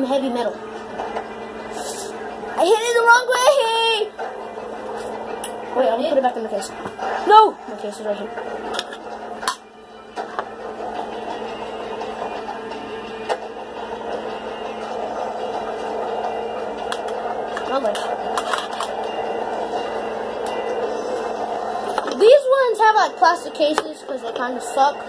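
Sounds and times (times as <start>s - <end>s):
muffled game music: 0.0s - 25.0s.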